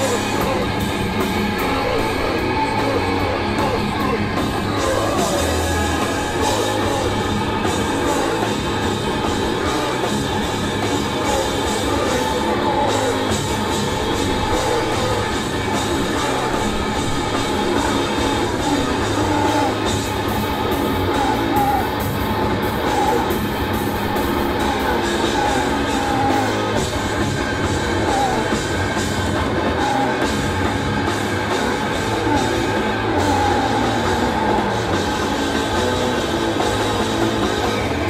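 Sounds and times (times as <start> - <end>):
heavy metal band playing: 0.0 - 38.0.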